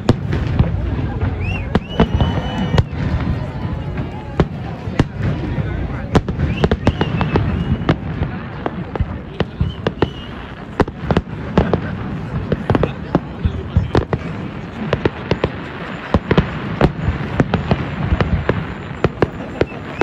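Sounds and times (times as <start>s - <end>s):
fireworks bangs and crackles: 0.0s - 20.0s.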